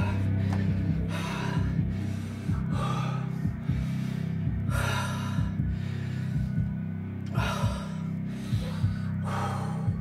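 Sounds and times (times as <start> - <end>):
loud gasping breaths: 0.0 - 10.0
man breathing hard: 0.0 - 10.0.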